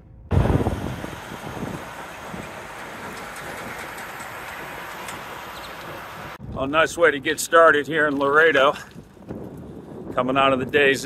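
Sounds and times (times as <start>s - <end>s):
trucks driving past: 0.3s - 6.4s.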